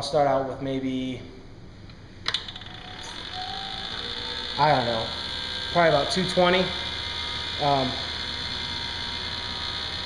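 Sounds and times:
lathe motor humming and whining: 2.3 - 10.0.

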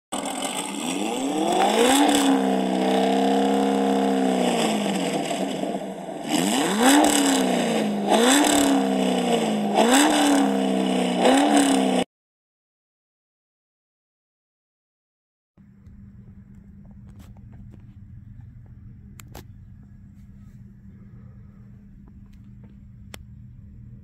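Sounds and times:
car engine revving and upshifting: 0.2 - 12.0.

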